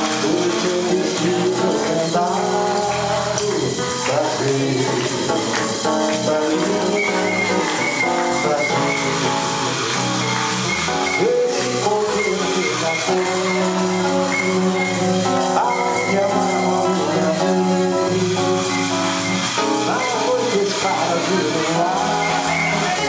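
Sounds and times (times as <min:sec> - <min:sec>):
acoustic guitar strumming: 0:00.0 - 0:23.0
light percussion: 0:00.0 - 0:23.0
man singing into a microphone: 0:00.0 - 0:23.0.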